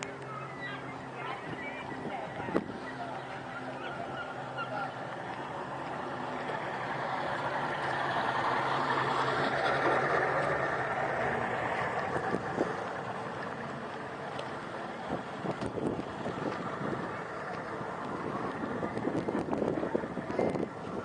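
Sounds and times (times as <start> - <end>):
boat engine idling: 0.0 - 21.0.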